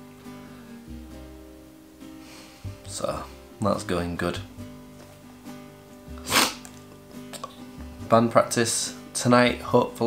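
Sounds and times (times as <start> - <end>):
soft guitar music: 0.0 - 10.0
person sneezing: 6.2 - 6.7.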